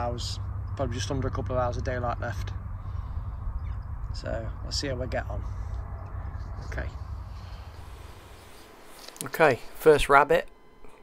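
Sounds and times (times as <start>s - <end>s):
wind rumble on microphone: 0.0s - 8.4s
faint open-air hiss: 0.0s - 11.0s.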